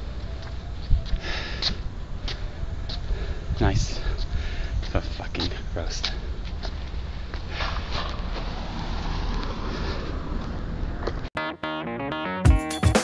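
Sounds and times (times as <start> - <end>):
guitar music: 11.4 - 13.0.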